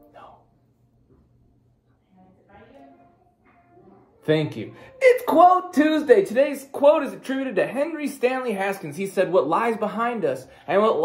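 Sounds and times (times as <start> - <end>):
faint background speech: 1.9 - 5.0.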